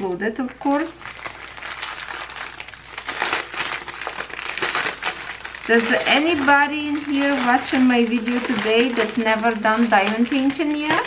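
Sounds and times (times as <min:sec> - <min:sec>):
plastic bag crinkling: 0:00.6 - 0:11.0.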